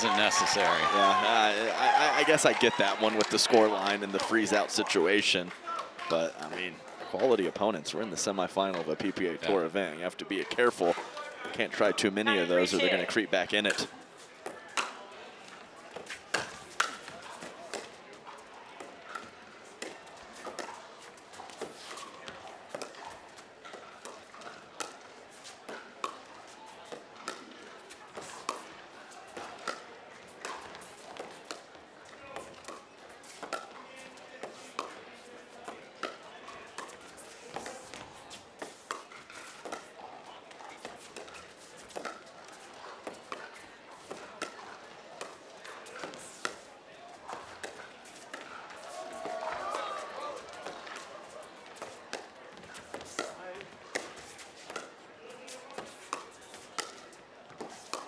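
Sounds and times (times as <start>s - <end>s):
murmur of crowd: 0.0s - 58.0s.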